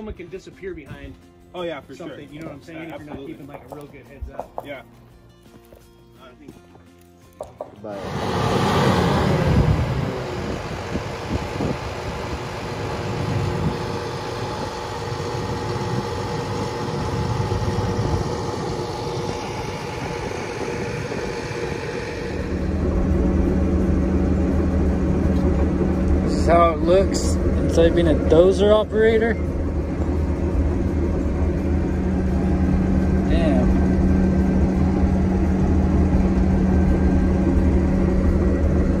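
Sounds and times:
bulldozer diesel engine: 7.8s - 39.0s.

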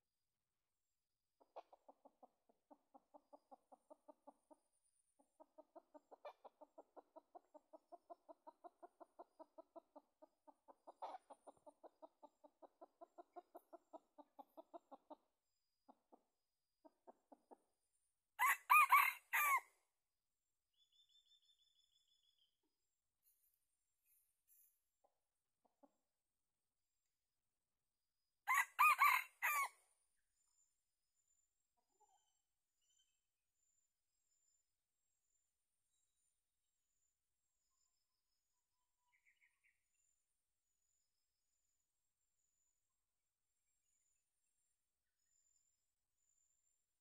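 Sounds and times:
rooster clucking: 5.4s - 15.2s, 18.4s - 19.6s
rooster crowing: 18.4s - 19.6s, 28.5s - 29.7s.

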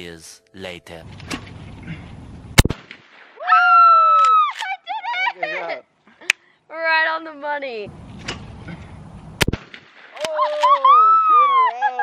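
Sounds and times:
shotgun shot: 2.6s - 3.4s, 9.4s - 10.4s.

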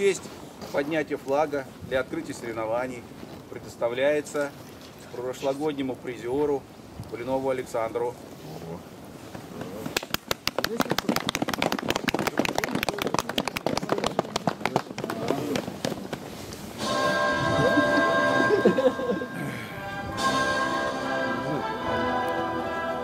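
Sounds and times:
crowd clapping: 9.9s - 16.3s
music over outdoor loudspeakers: 16.8s - 23.0s.

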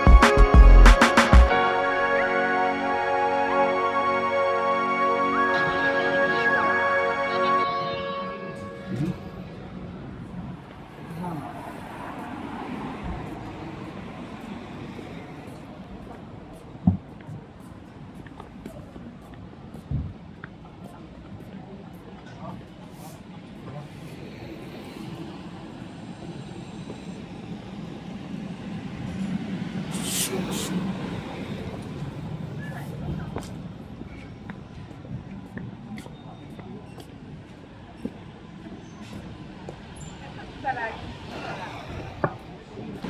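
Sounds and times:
traffic noise: 0.0s - 43.0s.

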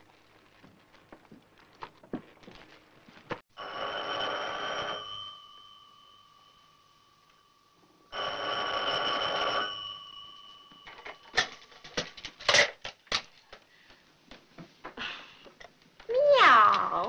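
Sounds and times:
telephone bell ringing: 3.6s - 11.9s.

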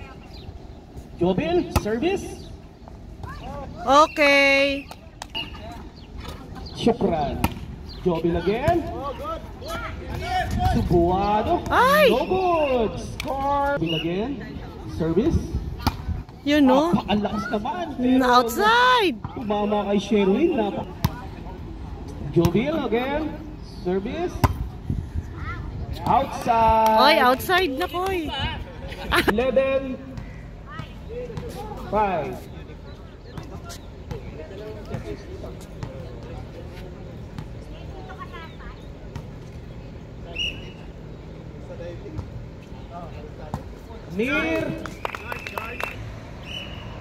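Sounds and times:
distant voices and shouts: 3.1s - 6.0s, 8.1s - 15.0s.

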